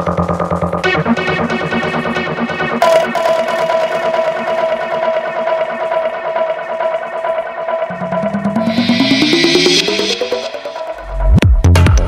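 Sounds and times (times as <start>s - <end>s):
electronic dance music: 0.9s - 12.0s.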